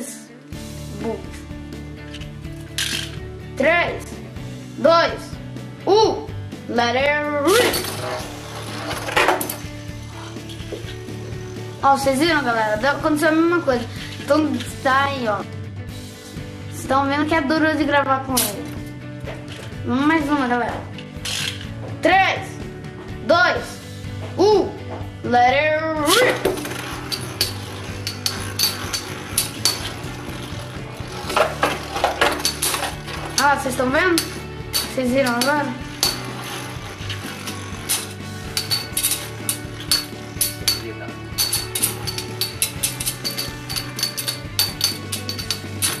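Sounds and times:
spinning tops clacking: 26.2 - 46.0
spinning top whirring: 26.4 - 33.5, 34.2 - 40.8.

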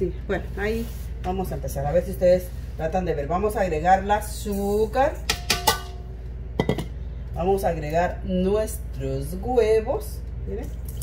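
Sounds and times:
steel bowl ringing: 5.3 - 6.8
bowls knocking together: 6.6 - 6.9.

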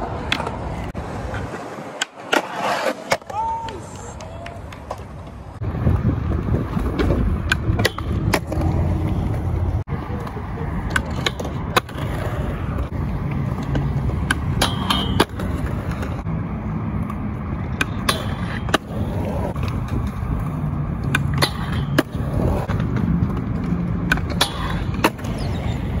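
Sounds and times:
skateboard clacks: 0.0 - 16.3, 17.0 - 26.0
skateboard wheels rolling on concrete: 0.0 - 26.0.

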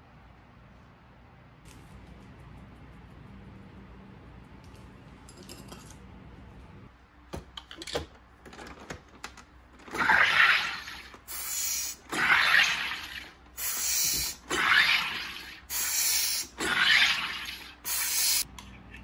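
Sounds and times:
carbonator injecting gas: 9.9 - 18.4.

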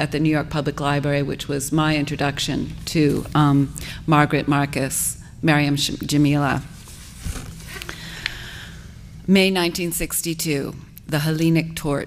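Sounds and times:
low room hum: 0.0 - 12.0
book pages rustling: 6.7 - 7.9.

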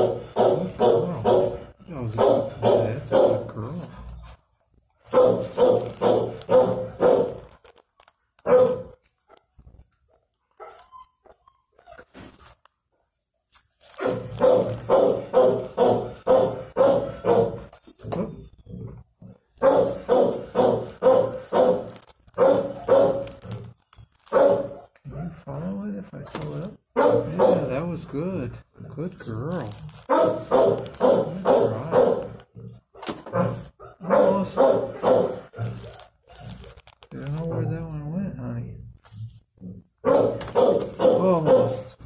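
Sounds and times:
dog barking: 0.0 - 3.6, 5.1 - 7.5, 8.4 - 9.4, 14.0 - 17.7, 19.6 - 23.4, 24.3 - 25.5, 26.9 - 27.8, 30.1 - 32.4, 33.0 - 36.7, 40.0 - 42.0.

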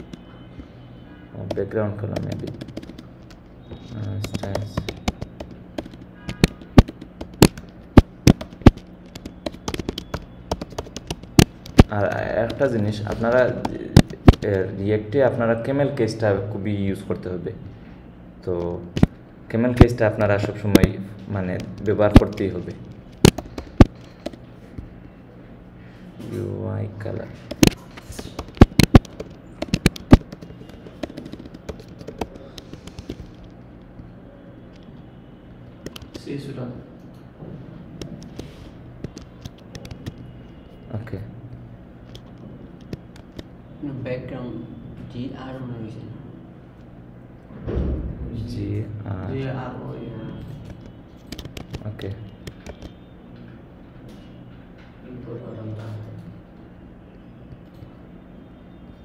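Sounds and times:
computer keyboard typing: 0.0 - 0.4, 1.4 - 14.8, 18.5 - 25.1, 27.2 - 37.3, 37.9 - 40.9, 41.5 - 43.6, 50.1 - 58.0.

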